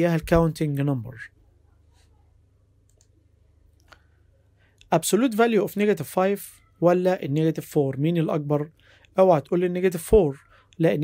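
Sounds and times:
computer mouse clicks: 2.8 - 3.2.

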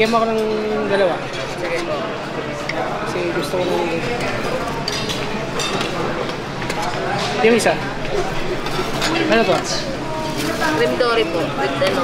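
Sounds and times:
chatter of people: 0.0 - 12.0.

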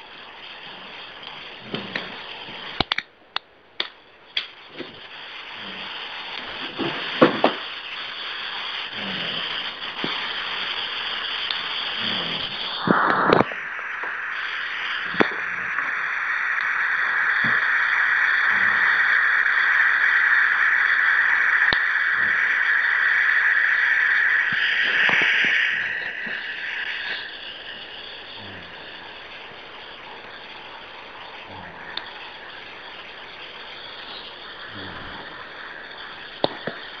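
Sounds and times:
phone line hiss: 0.0 - 3.1, 4.0 - 37.0
faint clicks: 0.0 - 9.0, 9.6 - 16.0, 16.6 - 22.8, 29.3 - 37.0.

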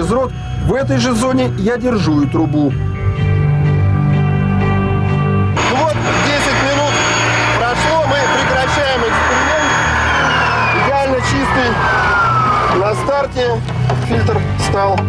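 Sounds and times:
vacuum cleaner motor whine: 5.6 - 13.9.

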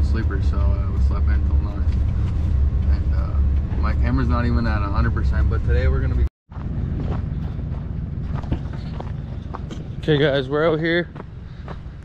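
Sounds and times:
low rumble: 0.0 - 12.0
footsteps crunching on snow: 6.5 - 10.3.

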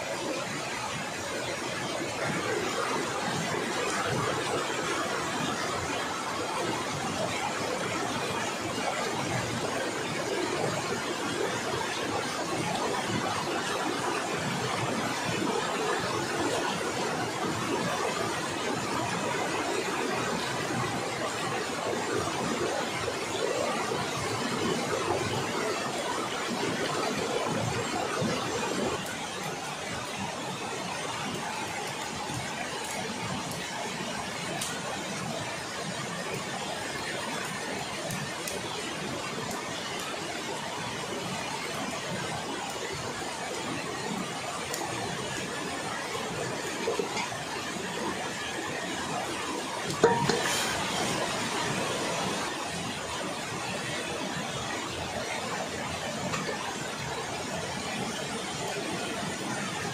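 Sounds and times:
fast-flowing river rushing: 0.0 - 59.9.

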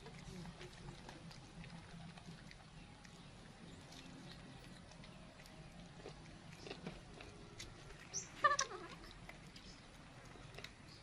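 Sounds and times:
young monkey squeaking: 8.0 - 9.1.

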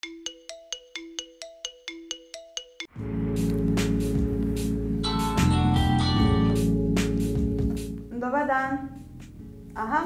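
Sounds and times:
bright music jingle: 0.1 - 7.8.

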